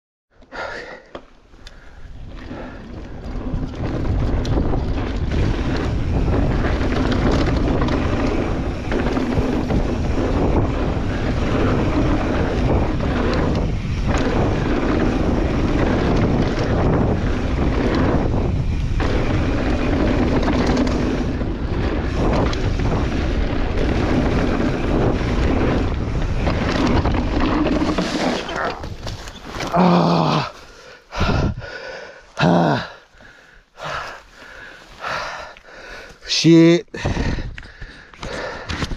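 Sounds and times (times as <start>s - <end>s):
low rumble from bike ride: 0.3s - 38.9s
wind buffeting microphone: 1.8s - 31.8s, 33.2s - 38.9s.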